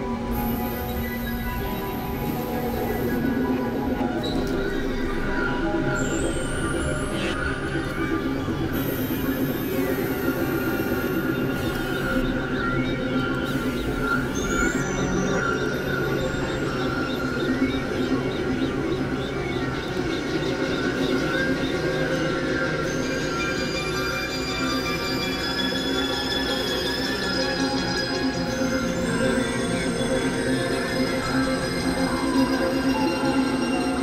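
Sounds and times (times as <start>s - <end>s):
layered synthesizer drone: 0.0s - 34.0s.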